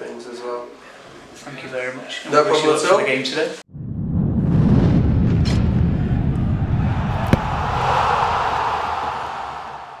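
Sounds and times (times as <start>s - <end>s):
low rumble: 3.7s - 9.2s.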